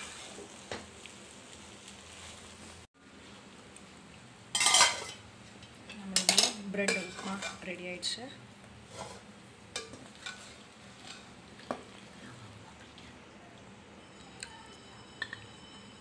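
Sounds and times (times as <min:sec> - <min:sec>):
faint sizzle: 0:00.0 - 0:16.0
spoon scraping metal pan: 0:04.6 - 0:05.2, 0:06.2 - 0:07.8, 0:08.9 - 0:11.4.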